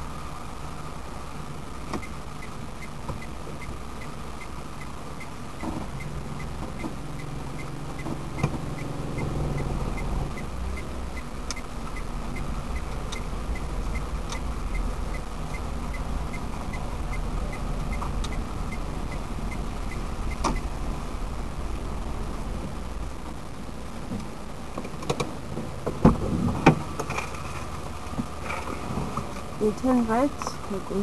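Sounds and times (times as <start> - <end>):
car engine and road noise: 0.0 - 31.0
turn-signal indicator ticking: 1.9 - 20.7.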